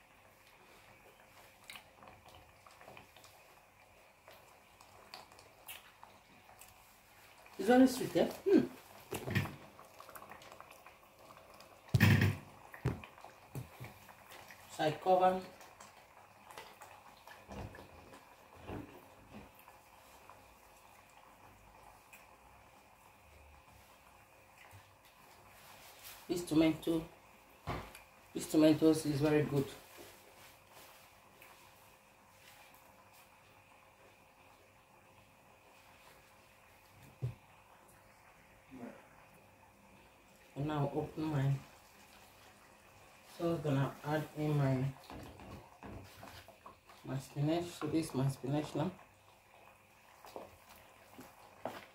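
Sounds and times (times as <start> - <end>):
faint steady hum: 0.0 - 51.9
kitchen knocks: 11.9 - 13.0.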